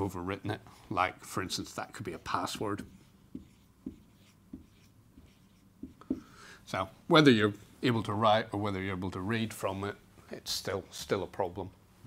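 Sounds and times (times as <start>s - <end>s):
marker writing on whiteboard: 2.1s - 6.4s.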